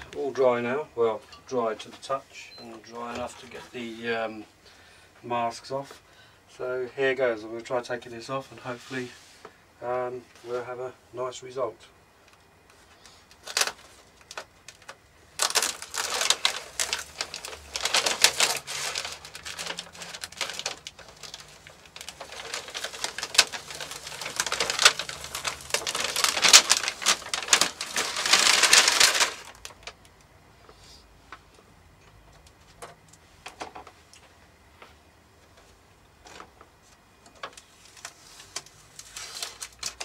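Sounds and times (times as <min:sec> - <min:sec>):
masking tape peeled and crumpled: 0:13.3 - 0:30.2, 0:37.3 - 0:40.0.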